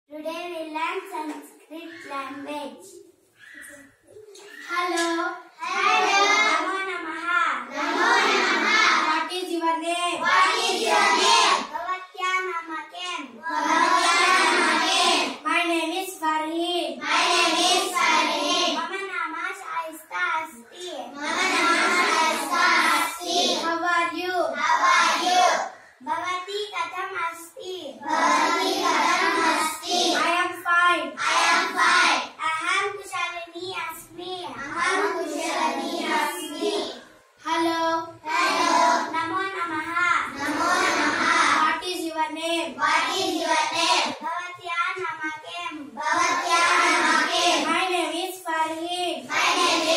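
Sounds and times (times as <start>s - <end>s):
children reciting in chorus: 1.3s - 49.9s.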